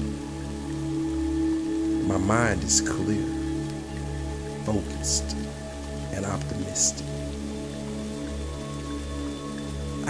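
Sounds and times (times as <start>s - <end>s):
rain-like hiss: 0.0s - 10.0s
slow ambient music: 0.0s - 10.0s.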